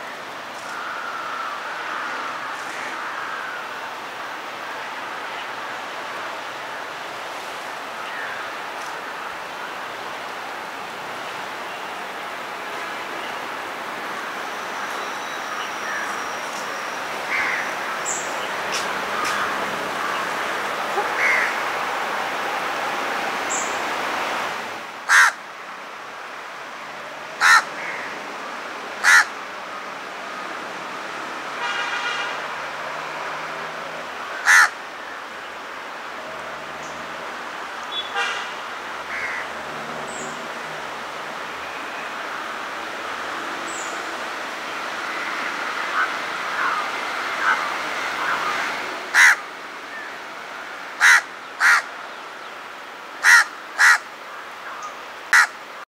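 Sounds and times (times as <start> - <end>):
steady background noise: 0.0 - 55.8
crow cawing: 0.7 - 3.8, 17.3 - 20.3, 20.9 - 21.6, 25.1 - 25.4, 27.4 - 28.2, 29.0 - 29.4, 34.4 - 34.8, 39.1 - 39.5, 45.9 - 50.1, 51.0 - 51.9, 53.2 - 54.8, 55.4 - 55.6.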